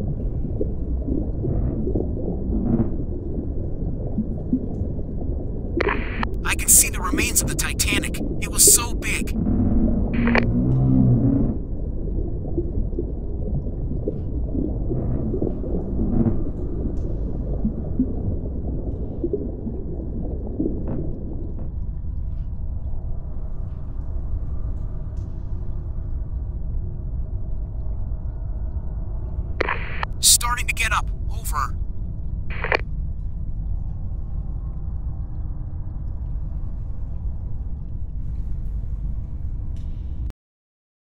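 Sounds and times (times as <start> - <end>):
low rumbling deep-sea ambience: 0.0 - 6.4, 9.4 - 30.0, 31.0 - 40.3.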